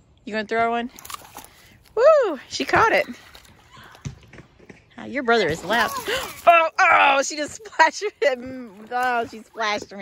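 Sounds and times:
dog splashing in water: 0:00.9 - 0:01.7, 0:05.4 - 0:06.5.

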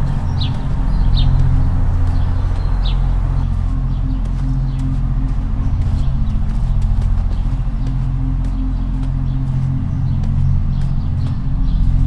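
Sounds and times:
low synth drone: 0:00.0 - 0:12.0.

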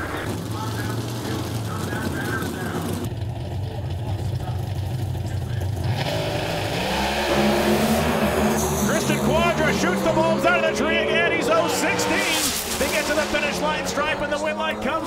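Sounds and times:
drag cars racing at high revs: 0:00.0 - 0:15.0.

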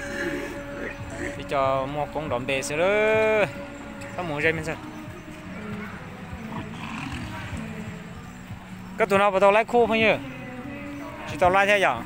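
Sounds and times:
faint voices: 0:03.4 - 0:08.8
bull lowing: 0:05.6 - 0:08.0.

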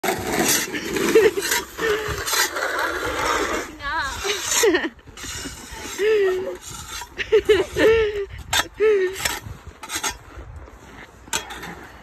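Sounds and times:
plastic shovel scraping ice: 0:00.0 - 0:12.0
people laughing: 0:04.3 - 0:06.6, 0:07.2 - 0:08.3.

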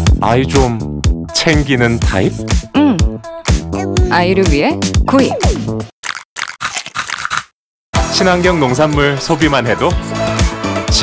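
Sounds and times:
crunchy chewing: 0:06.0 - 0:07.6.

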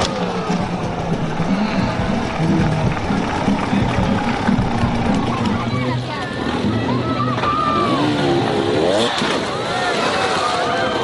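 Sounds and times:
dirt bike engine revving: 0:00.0 - 0:11.0.

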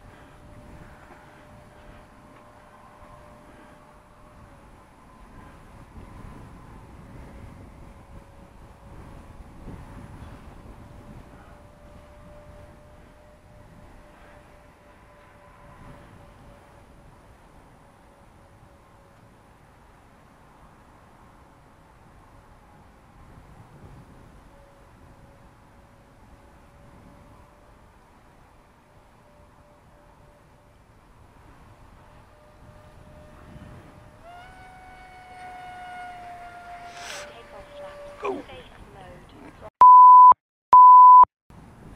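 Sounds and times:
wind rumble on microphone: 0:00.0 - 0:19.5, 0:20.4 - 0:39.7, 0:41.5 - 0:41.9
model jet fan whine: 0:00.0 - 0:39.4.

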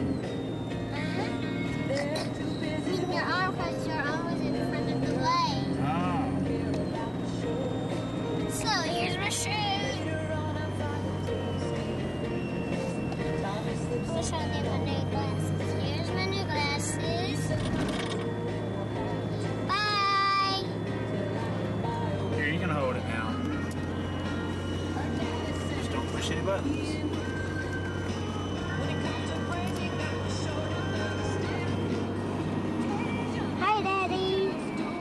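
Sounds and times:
car cabin drone: 0:00.0 - 0:35.0
music playing: 0:00.0 - 0:35.0
child's high-pitched voice: 0:19.7 - 0:20.7, 0:33.6 - 0:34.6.

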